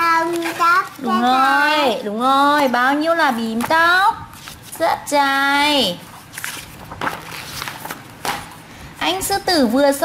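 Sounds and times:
paper pages turning: 0.1s - 1.3s, 4.3s - 4.8s, 6.1s - 8.5s.

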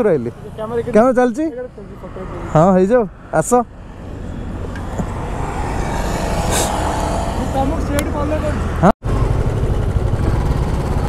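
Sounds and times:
motorcycle engine running: 4.6s - 11.0s.

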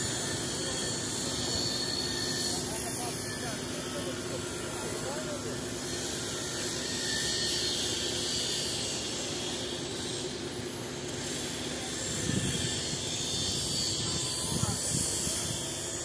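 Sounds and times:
diesel machinery drone: 0.0s - 16.0s.

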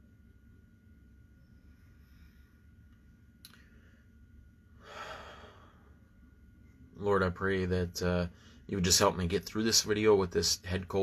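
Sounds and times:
faint click: 2.9s - 3.6s
man sighing: 4.8s - 5.7s.

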